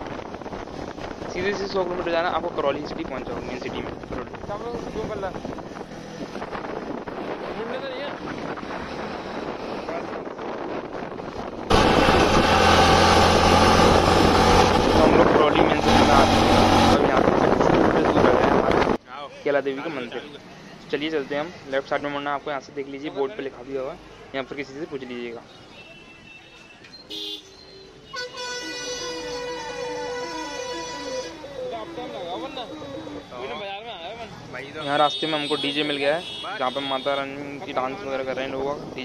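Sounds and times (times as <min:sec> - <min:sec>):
wind rush on microphone: 0:00.0 - 0:19.0
motorcycle engine cruising: 0:11.4 - 0:18.9
vehicle horn toot: 0:25.5 - 0:31.4, 0:34.8 - 0:37.3.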